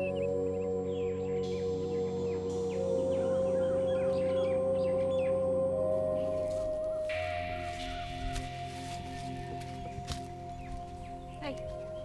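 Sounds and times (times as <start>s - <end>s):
small birds chirping: 0.0s - 12.0s
soft background music: 0.0s - 12.0s.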